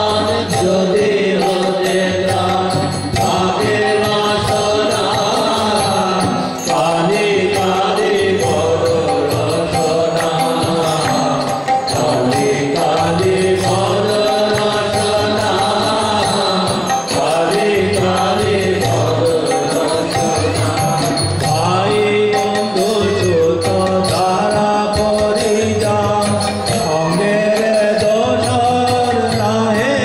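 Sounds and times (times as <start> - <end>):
group singing: 0.0 - 30.0
harmonium: 0.0 - 30.0
lead voice singing: 0.0 - 30.0.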